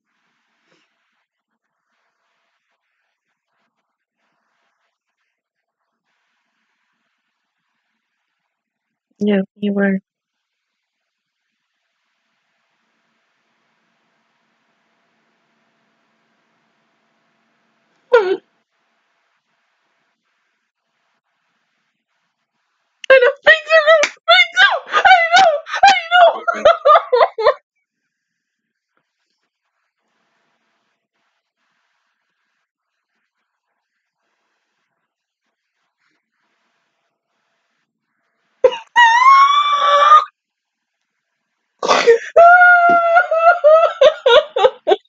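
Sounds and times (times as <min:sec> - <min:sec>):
woman squealing excitedly: 0:23.1 - 0:27.6, 0:38.6 - 0:40.3, 0:41.9 - 0:45.0
woman gasping: 0:41.8 - 0:42.5.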